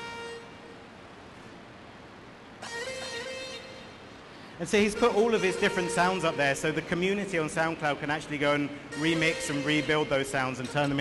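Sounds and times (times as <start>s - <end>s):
long held music notes: 0.0s - 1.1s, 2.6s - 11.0s
room hiss: 0.0s - 11.0s.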